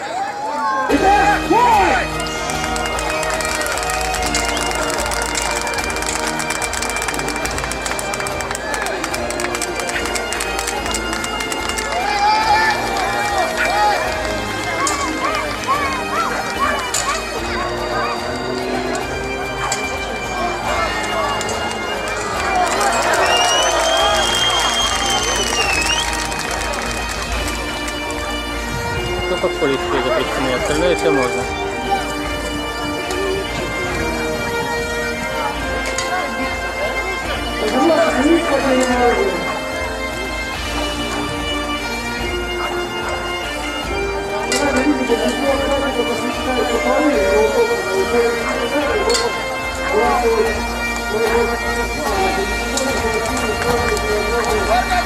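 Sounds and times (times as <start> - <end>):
bagpipe music with drone: 0.0 - 55.0
voices: 0.0 - 55.0.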